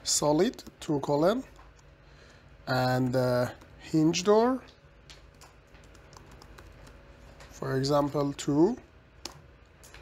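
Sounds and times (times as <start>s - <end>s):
keyboard typing: 5.1s - 7.5s.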